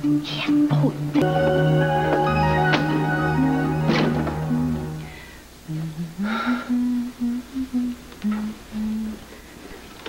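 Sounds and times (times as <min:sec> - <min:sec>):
woman humming a slow tune: 0:00.0 - 0:01.8, 0:03.3 - 0:09.2.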